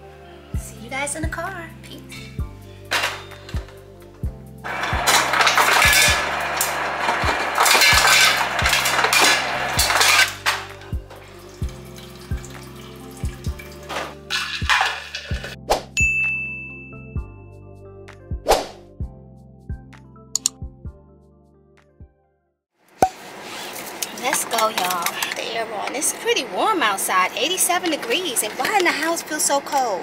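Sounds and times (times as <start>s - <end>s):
background music with steady beat: 0.0s - 22.2s
ice cubes clattering into glass: 4.7s - 10.7s, 13.8s - 15.5s
ice clinking: 4.7s - 15.6s.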